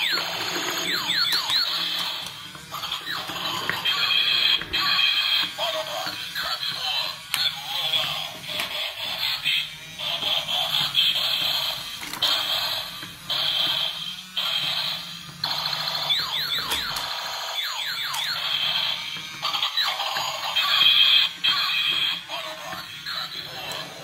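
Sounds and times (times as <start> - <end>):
toy car electronic sound effects: 0.0 - 24.0.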